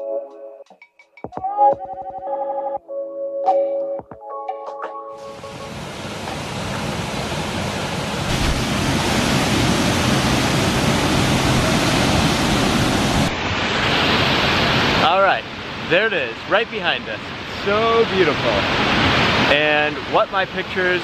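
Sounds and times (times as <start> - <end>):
waterfall rushing: 5.2 - 21.0
man speaking: 15.0 - 18.7, 19.5 - 21.0.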